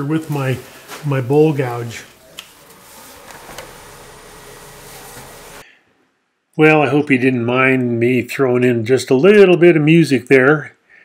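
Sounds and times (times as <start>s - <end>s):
mechanical background noise: 0.0s - 5.6s.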